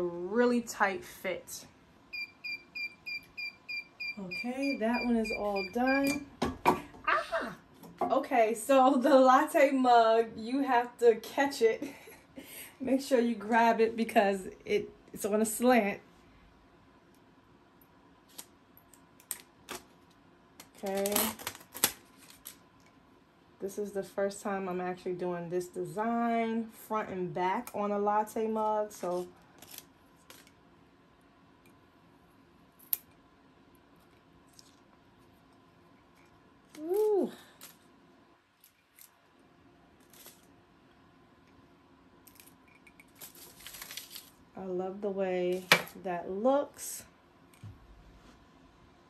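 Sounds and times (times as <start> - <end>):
paper and tape peeling crackles: 18.3 - 18.5, 20.6 - 22.6, 29.0 - 30.6, 40.0 - 40.5, 42.3 - 44.4.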